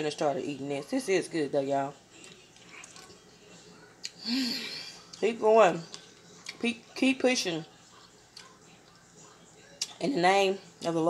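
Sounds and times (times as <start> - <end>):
person chewing food: 2.2 - 3.3, 5.9 - 6.6, 7.9 - 9.1.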